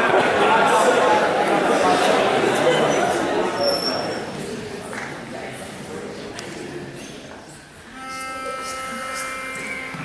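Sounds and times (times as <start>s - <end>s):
pitch pipe held note: 7.9s - 10.0s.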